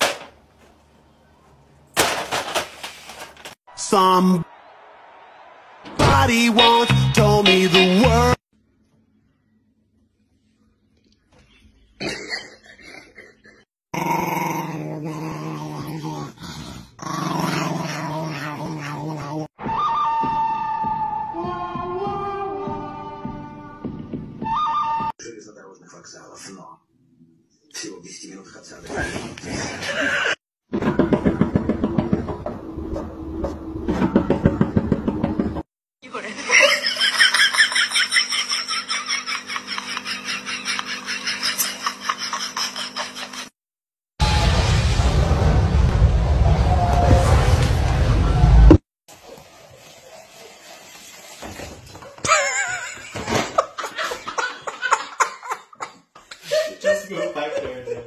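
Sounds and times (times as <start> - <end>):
small dog growling: 13.9 - 19.5.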